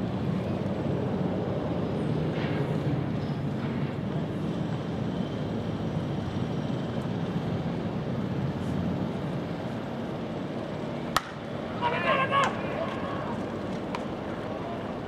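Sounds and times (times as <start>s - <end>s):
outdoor ambient rumble: 0.0s - 15.0s
sharp crack: 11.1s - 11.5s.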